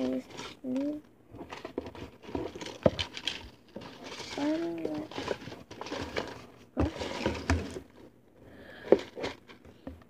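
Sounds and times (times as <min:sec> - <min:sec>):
handling rustling and tapping: 0:00.0 - 0:10.0.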